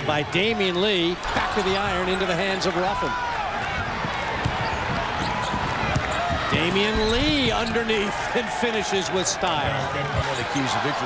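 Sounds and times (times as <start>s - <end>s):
crowd din: 0.0s - 11.0s
basketball bouncing on court: 3.6s - 7.8s.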